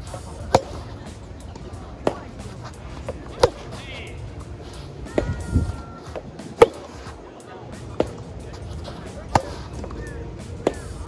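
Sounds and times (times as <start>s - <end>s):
rackets hitting tennis ball: 0.0s - 11.0s.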